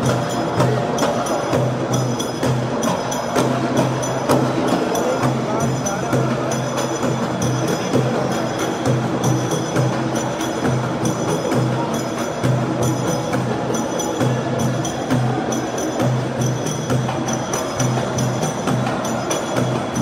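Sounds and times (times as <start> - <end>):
crowd chatter: 0.0 - 20.0
live music with drumbeat: 0.0 - 20.0.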